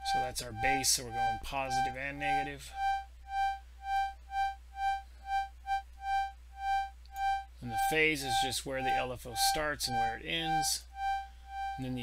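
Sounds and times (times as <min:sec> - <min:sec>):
synthesized organ high note: 0:00.0 - 0:12.0.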